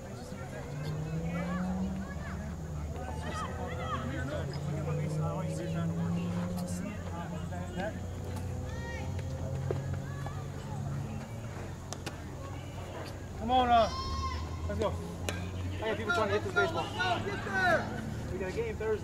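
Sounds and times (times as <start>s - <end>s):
distant voices calling out: 0.0s - 19.0s
loud drawn-out shout: 13.5s - 14.7s, 15.7s - 18.2s.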